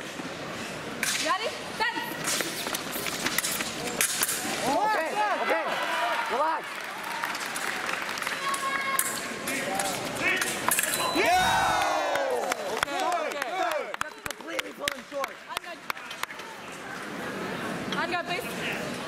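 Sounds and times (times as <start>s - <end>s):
footwork: 2.2s - 4.7s
people shouting: 10.2s - 12.8s.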